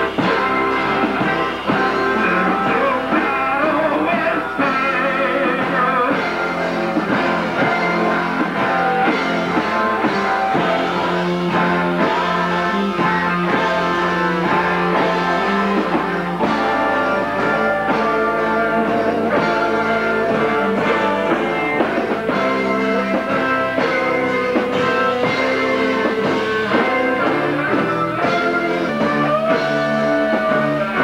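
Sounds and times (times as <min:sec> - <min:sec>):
rock band playing: 0:00.0 - 0:31.0.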